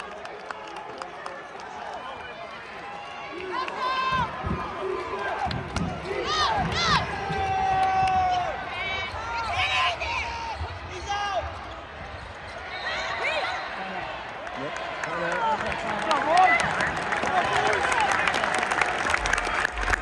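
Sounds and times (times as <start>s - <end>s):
spectators' voices and shouts: 0.0s - 20.0s.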